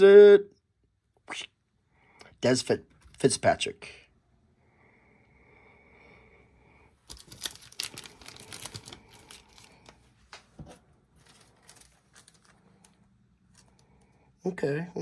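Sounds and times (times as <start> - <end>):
trading cards and plastic crinkling: 7.0 - 14.0.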